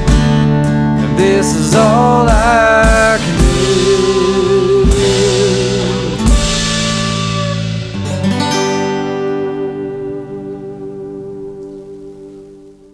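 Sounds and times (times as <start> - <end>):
guitar and bass chords: 0.0 - 12.9
guitar chord ringing out: 0.0 - 12.9
sharp hit: 2.3 - 10.4.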